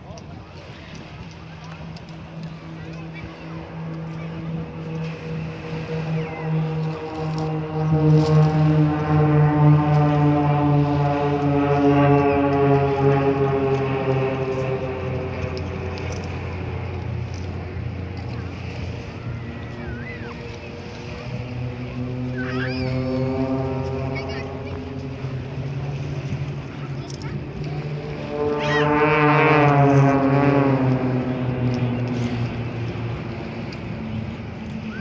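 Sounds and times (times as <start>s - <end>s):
propeller planes droning past: 0.0s - 35.0s.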